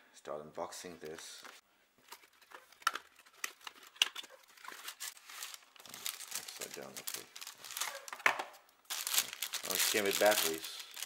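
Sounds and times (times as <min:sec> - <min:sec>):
cardboard and plastic rustling: 0:02.0 - 0:11.0.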